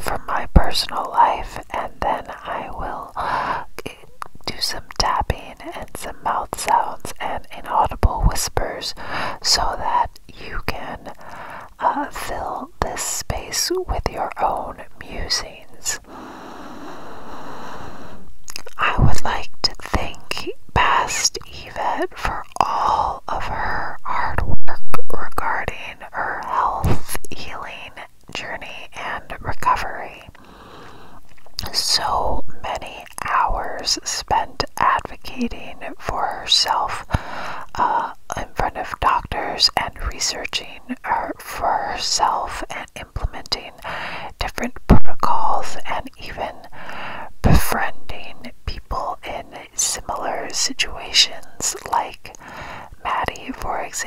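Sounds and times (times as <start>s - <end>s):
person whispering close to microphone: 0.0s - 16.1s, 18.5s - 30.4s, 31.5s - 54.0s
long breathy hiss: 16.0s - 18.3s, 30.4s - 31.2s
sharp mouth clicks: 18.4s - 18.8s.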